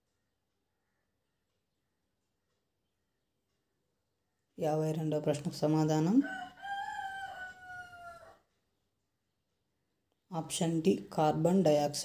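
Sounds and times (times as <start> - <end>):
rooster crowing: 6.2 - 8.5.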